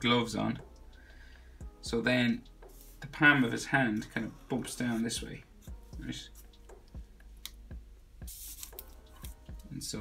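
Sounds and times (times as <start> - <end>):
scratchy rustle of hand on paper: 8.3 - 9.4.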